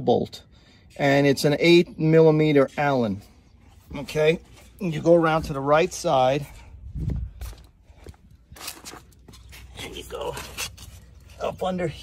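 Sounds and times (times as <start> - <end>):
footsteps on concrete: 2.2 - 11.9.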